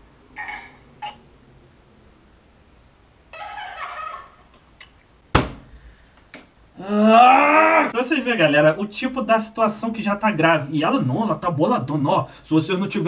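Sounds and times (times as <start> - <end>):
high-pitched cries: 0.3 - 1.2, 3.3 - 4.5
sharp thump: 5.3 - 5.8.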